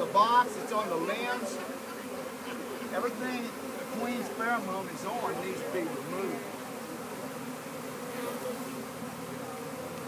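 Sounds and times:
swarm of bees buzzing: 0.0 - 10.0.

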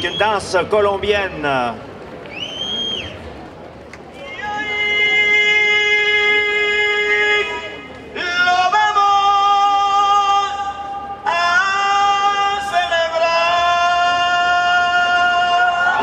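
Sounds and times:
singer holding long notes: 4.1 - 16.0.

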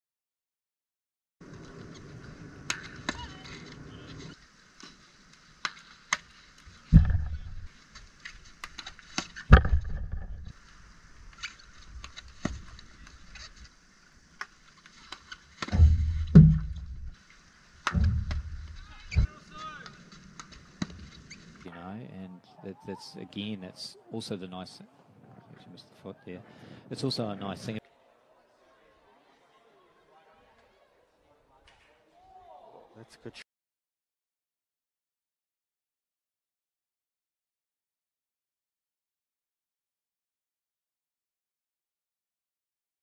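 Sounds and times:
steady hiss: 1.4 - 9.6, 10.3 - 21.8
ball thudding near goal: 6.9 - 7.7, 15.6 - 17.1, 17.8 - 19.3
hockey sticks striking ball: 14.4 - 17.1, 17.8 - 21.5.

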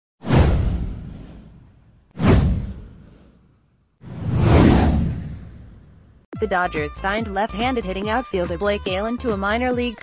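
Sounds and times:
deep low boom: 0.3 - 3.2, 4.1 - 6.2
whoosh sound effect: 2.2 - 6.0.

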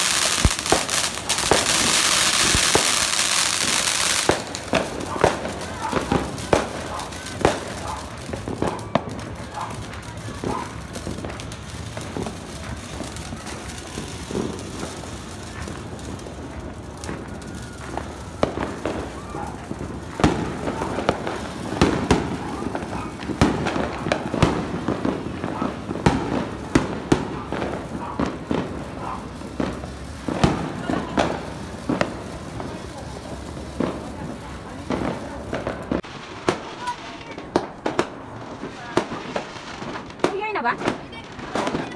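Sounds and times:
fireworks bangs and cracks: 0.0 - 41.9
fireworks crackling hiss: 0.0 - 41.9
people talking: 5.0 - 24.4, 30.5 - 31.6, 32.6 - 35.8, 36.6 - 37.7, 40.2 - 41.9.

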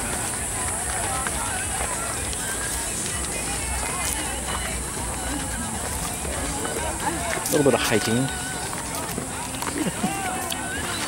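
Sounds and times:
footsteps on dirt trail: 0.0 - 11.0
indistinct chatter: 0.0 - 11.0.

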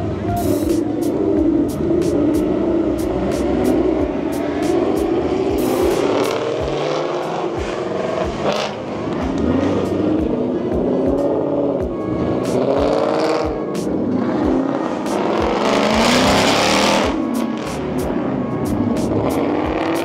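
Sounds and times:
cars accelerating past: 0.0 - 20.0
music playing: 0.0 - 20.0.

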